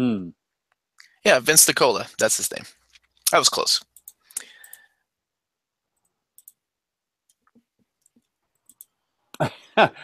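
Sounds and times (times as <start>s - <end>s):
man talking: 0.0s - 0.4s, 1.1s - 3.8s.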